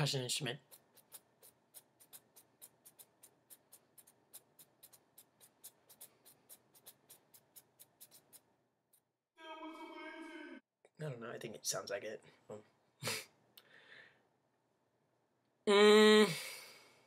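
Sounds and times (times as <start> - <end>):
fingernails scratching stubble: 0.6 - 9.0.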